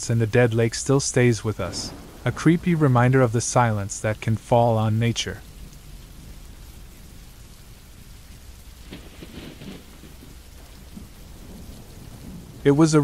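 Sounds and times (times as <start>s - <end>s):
rain hiss: 0.0s - 13.0s
low thunder rumble: 0.2s - 13.0s.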